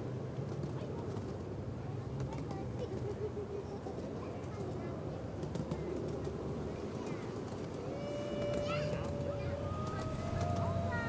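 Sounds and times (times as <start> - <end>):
miniature train rumbling on track: 0.0 - 11.0
people talking faintly: 0.4 - 11.0.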